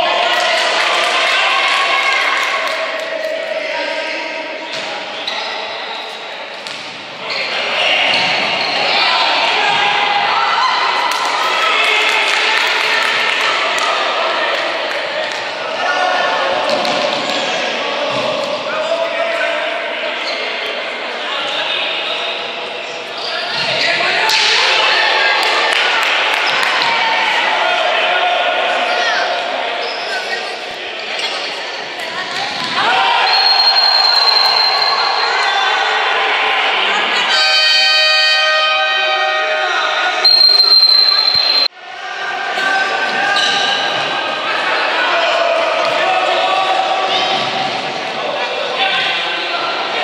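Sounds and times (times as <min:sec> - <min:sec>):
crowd shouting in sports hall: 0:00.0 - 0:50.0
spectators' voices echoing: 0:00.0 - 0:50.0
players shouting: 0:32.6 - 0:49.4
referee's whistle blast: 0:33.2 - 0:35.4, 0:40.2 - 0:41.7
held pitched tone: 0:33.3 - 0:35.4, 0:40.2 - 0:41.7.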